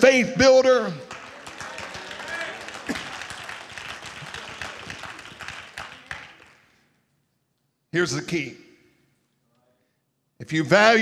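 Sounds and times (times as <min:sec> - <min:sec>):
congregation applauding: 0:00.8 - 0:06.9.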